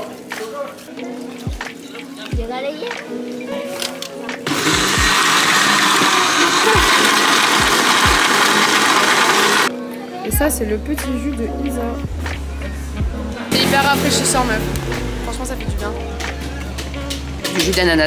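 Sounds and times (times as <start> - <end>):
background music with beat: 0.0 - 18.0
blender running: 4.5 - 9.7.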